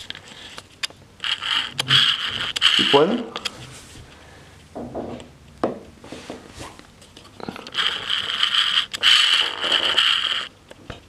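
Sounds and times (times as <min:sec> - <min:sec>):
loud scraping rubbing noise: 0:01.2 - 0:03.2, 0:07.7 - 0:10.5.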